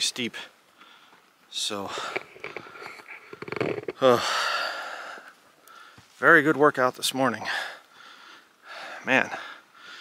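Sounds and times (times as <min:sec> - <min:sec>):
man breathing hard: 0:04.0 - 0:06.0, 0:07.4 - 0:10.0.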